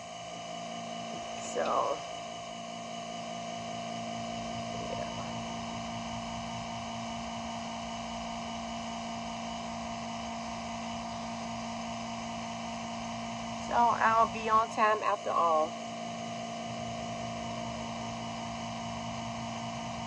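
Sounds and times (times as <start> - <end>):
electric fuel pump humming: 0.0 - 20.0.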